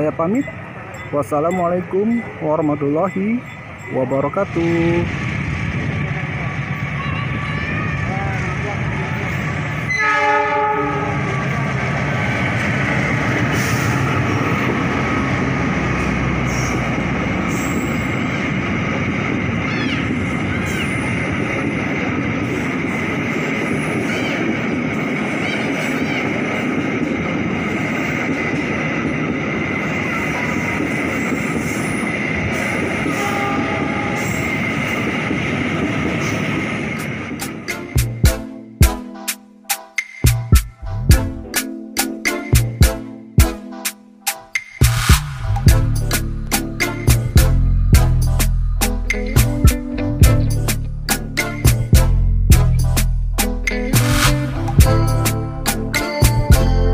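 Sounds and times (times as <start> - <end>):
train rumble: 0.0 - 56.9
train horn blast: 9.8 - 11.5, 33.0 - 34.5.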